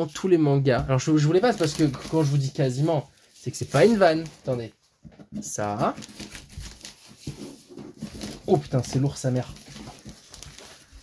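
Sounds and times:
plastic wrap rustling: 1.0s - 11.0s.

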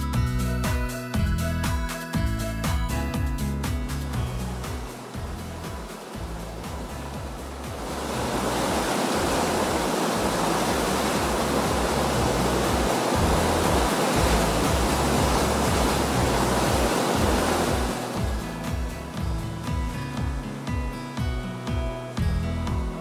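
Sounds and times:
background music: 0.0s - 23.0s
rushing waterfall: 2.6s - 23.0s.

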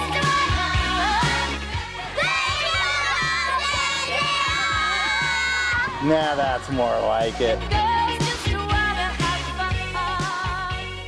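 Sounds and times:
pop music with steady beat: 0.0s - 11.0s
girls cheering and screaming: 2.0s - 6.0s.

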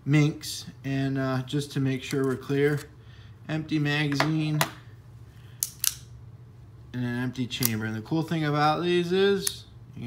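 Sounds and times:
pistol metal clicks: 5.6s - 6.1s.

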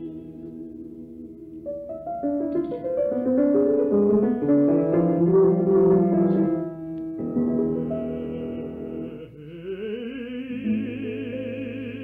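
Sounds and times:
sustained instrumental chords: 6.9s - 12.0s.

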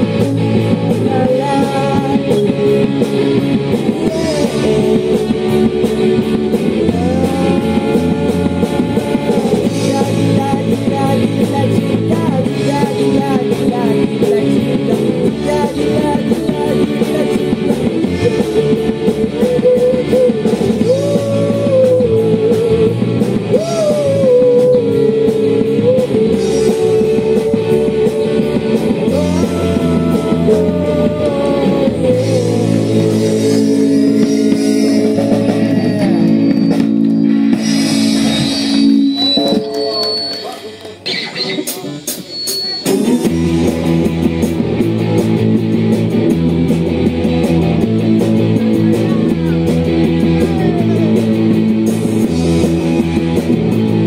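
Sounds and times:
person singing: 0.0s - 36.9s, 48.5s - 51.5s
bass guitar: 0.0s - 54.0s
drums: 0.0s - 54.0s
electric guitar: 0.0s - 54.0s.

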